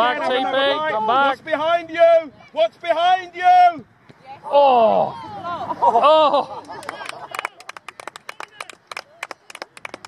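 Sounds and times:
spectators clapping: 0:06.6 - 0:10.0.

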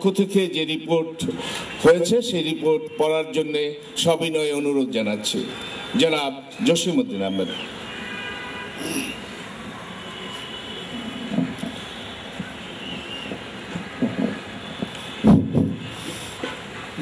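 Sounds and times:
loud bump: 0:15.2 - 0:15.8.

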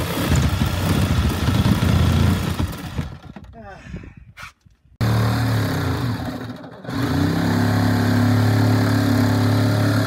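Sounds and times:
power saw motor running: 0:05.0 - 0:10.0.

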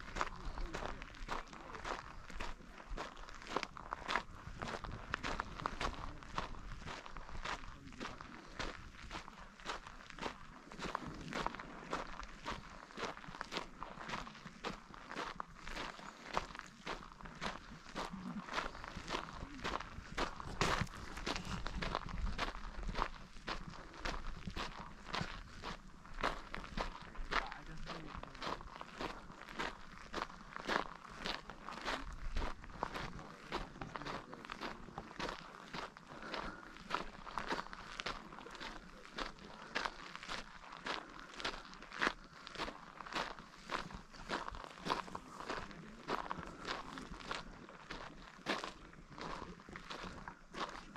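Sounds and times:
footsteps crunching on gravel: 0:00.0 - 0:50.9.

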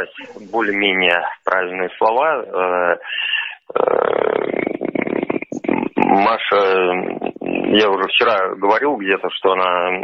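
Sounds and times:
man's creaky hesitation sound: 0:03.7 - 0:07.8.

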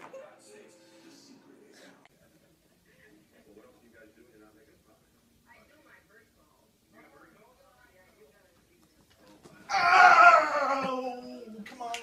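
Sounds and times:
wailing voice falling in pitch: 0:09.7 - 0:11.5.

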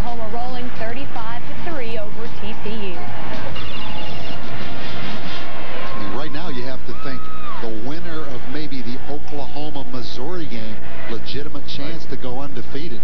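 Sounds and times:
sports commentator talking: 0:06.0 - 0:13.0.

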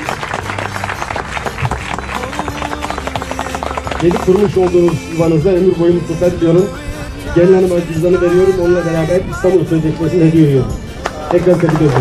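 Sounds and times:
guests applauding: 0:00.0 - 0:05.1, 0:11.0 - 0:12.0
soft music: 0:00.0 - 0:12.0.

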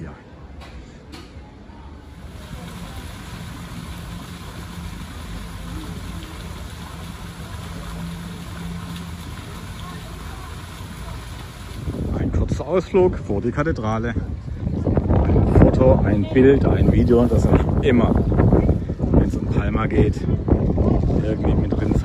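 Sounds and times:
fountain water splashing: 0:01.8 - 0:22.0.

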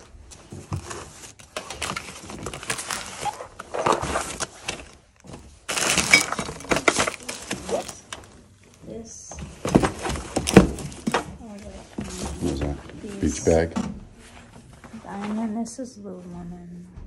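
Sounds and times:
plastic bags crinkling: 0:00.0 - 0:08.8
items knocking and clinking: 0:00.0 - 0:12.9.

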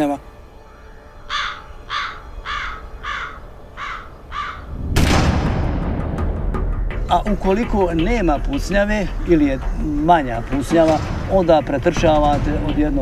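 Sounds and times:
bird cawing: 0:00.3 - 0:04.8, 0:09.0 - 0:11.2
loud explosion: 0:04.7 - 0:06.5.

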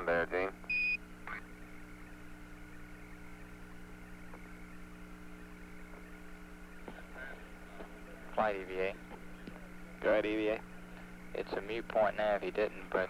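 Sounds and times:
radio channel hum and hiss: 0:00.0 - 0:13.0.

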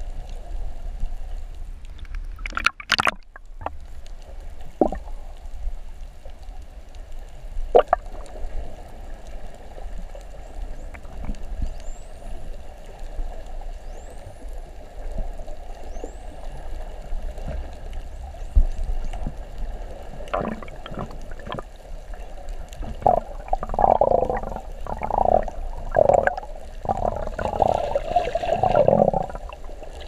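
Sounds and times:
underwater water noise: 0:00.0 - 0:30.0.

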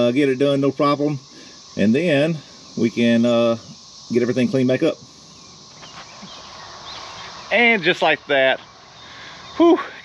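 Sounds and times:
bird chirps: 0:00.0 - 0:10.0
steady faint hiss: 0:00.0 - 0:10.0.

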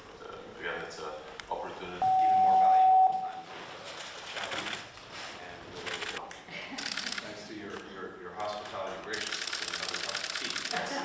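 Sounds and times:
background chatter of voices: 0:04.2 - 0:11.0.

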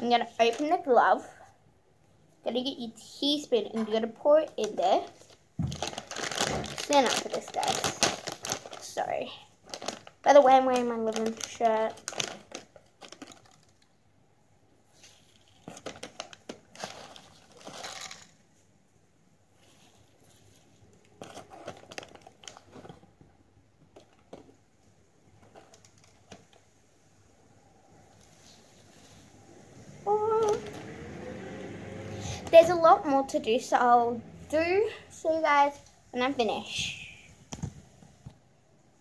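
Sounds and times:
plastic packet and glove crinkling: 0:04.0 - 0:14.0, 0:14.9 - 0:18.6, 0:19.5 - 0:23.3, 0:25.3 - 0:26.6.

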